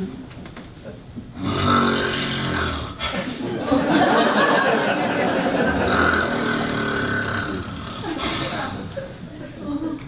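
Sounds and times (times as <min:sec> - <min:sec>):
person snoring: 0:01.4 - 0:03.2, 0:05.6 - 0:09.0.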